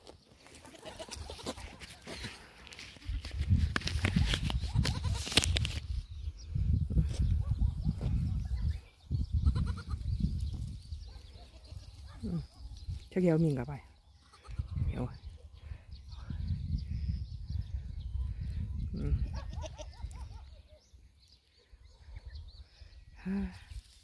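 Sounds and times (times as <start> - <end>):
goats bleating: 0.5 - 1.7.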